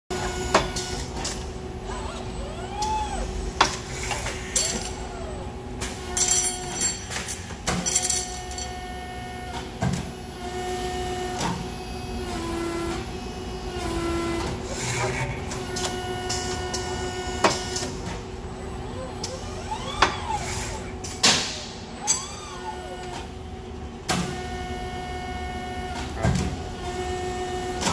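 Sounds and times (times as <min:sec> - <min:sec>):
steady machine hum: 0:00.1 - 0:27.9
grippers and clamps clacking: 0:05.8 - 0:08.8
motor whines: 0:18.5 - 0:20.9.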